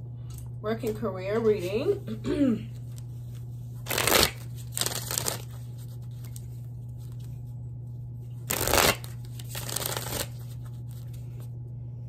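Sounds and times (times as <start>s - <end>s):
cards being shuffled: 2.9s - 7.4s, 8.4s - 11.5s.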